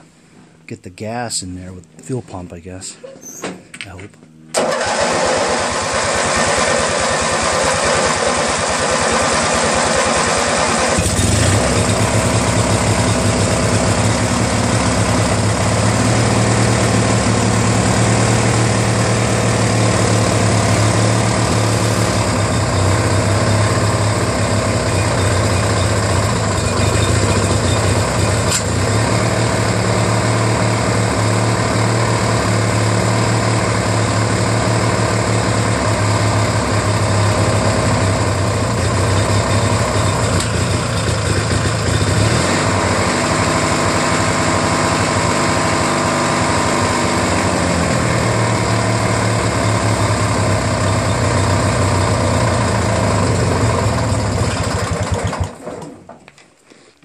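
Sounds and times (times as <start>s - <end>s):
tractor engine starting and running: 4.5s - 56.6s.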